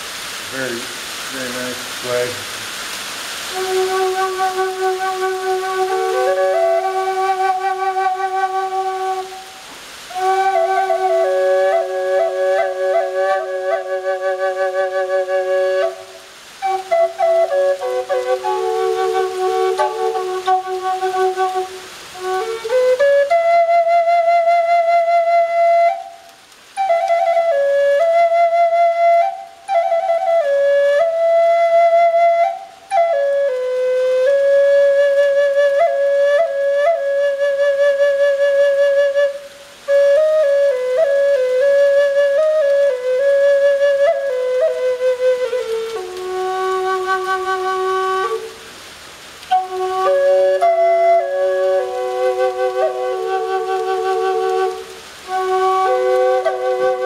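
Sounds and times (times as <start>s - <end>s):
drone flute melody: 3.5s - 48.6s, 49.5s - 57.0s.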